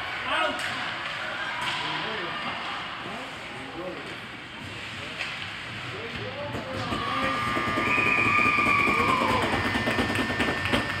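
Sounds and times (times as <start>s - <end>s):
spectators shouting: 6.8s - 10.2s.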